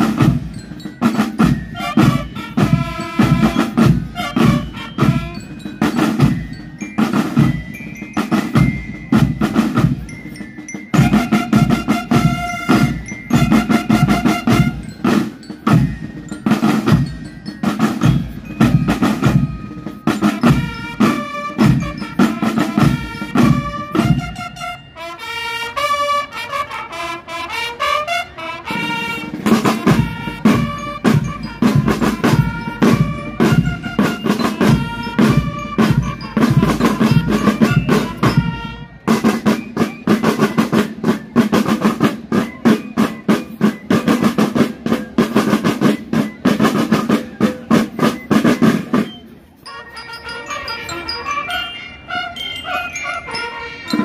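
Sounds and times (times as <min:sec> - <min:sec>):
snare drums beating: 0:00.0 - 0:24.6, 0:28.7 - 0:49.2
wind instruments melody: 0:00.0 - 0:54.0.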